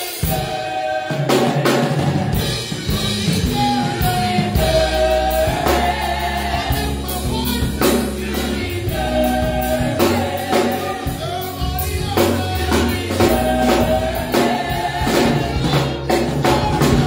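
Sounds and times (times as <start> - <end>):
drum hits: 0.0 - 17.0
gospel choir singing: 0.0 - 17.0
low bass line: 2.4 - 17.0.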